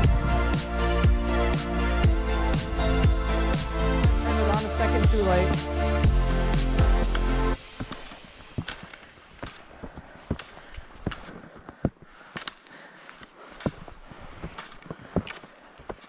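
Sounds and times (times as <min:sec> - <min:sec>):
ski poles planting in snow: 0:06.4 - 0:16.0
skis sliding over snow: 0:07.0 - 0:16.0.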